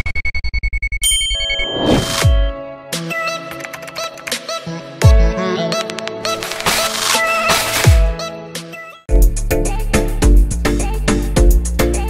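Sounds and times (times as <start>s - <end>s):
bright ringing ding: 1.0s - 2.6s
whoosh falling in pitch: 1.4s - 2.6s.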